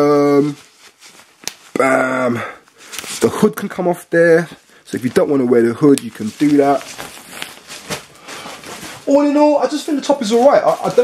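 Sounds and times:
jacket fabric rustling: 0.0 - 11.0.

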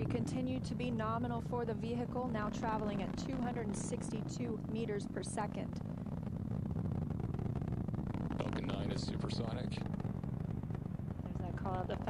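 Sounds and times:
rocket engines rumbling: 0.0 - 12.0.

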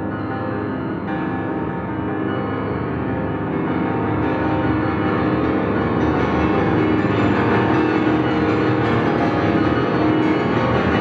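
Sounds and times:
grand piano rapid repeated notes: 0.0 - 11.0.

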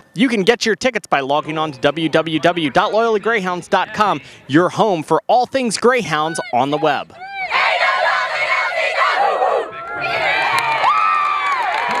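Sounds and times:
women cheering and shouting: 6.2 - 12.0
sharp claps: 10.5 - 12.0.

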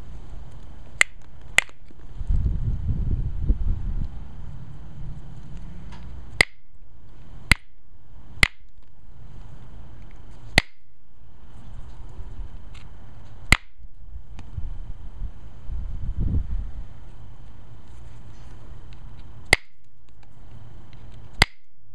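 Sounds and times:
flint flakes snapping: 0.5 - 2.0, 5.5 - 6.7, 8.4 - 8.9.

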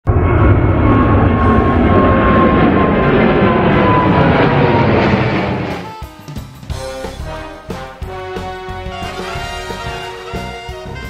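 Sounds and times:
jet engine rumble with whine: 0.0 - 7.6.

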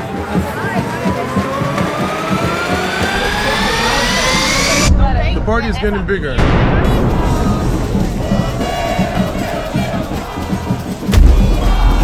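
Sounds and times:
rushing noise: 0.6 - 12.0
buzzy tone climbing in pitch: 1.0 - 5.3.

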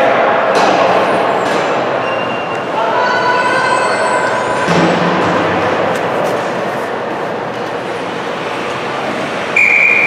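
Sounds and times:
ice rink crowd noise: 0.0 - 10.0
referee's whistle blast: 9.6 - 10.0.

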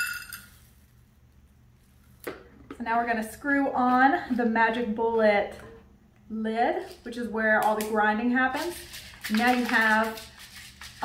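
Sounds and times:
metal cup clinking: 0.0 - 0.6.

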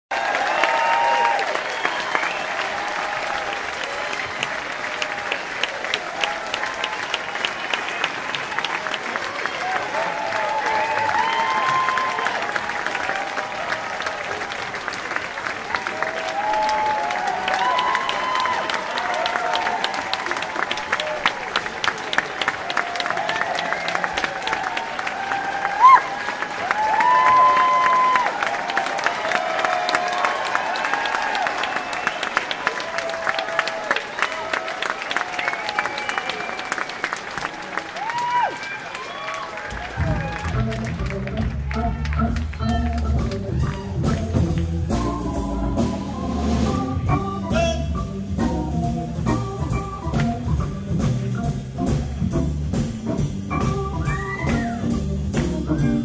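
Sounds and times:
audience applauding: 0.0 - 47.8, 53.5 - 56.0.

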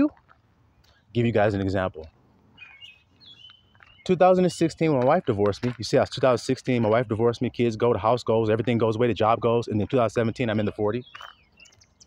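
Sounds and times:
faint bird chirps: 2.5 - 4.2, 10.2 - 12.0.

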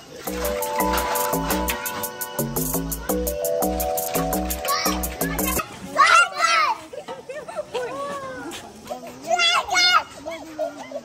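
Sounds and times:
background music with steady beat: 0.2 - 5.6.

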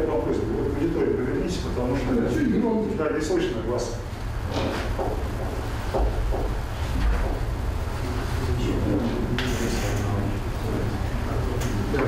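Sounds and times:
faint indistinct voices: 8.0 - 12.0.

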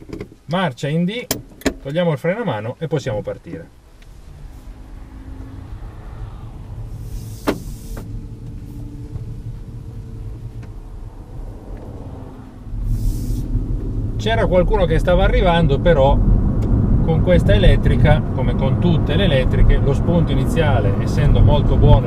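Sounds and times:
faint steady hum: 0.0 - 22.0
road and tyre rumble: 0.0 - 22.0.

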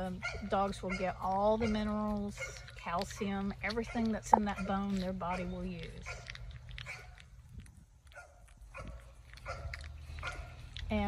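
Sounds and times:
puppy wet chewing: 0.0 - 11.0.

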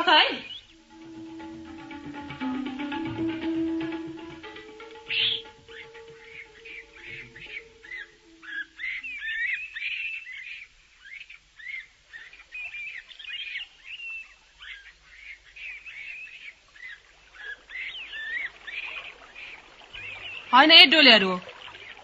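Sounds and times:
small birds chirping: 0.0 - 1.4, 4.2 - 22.0.

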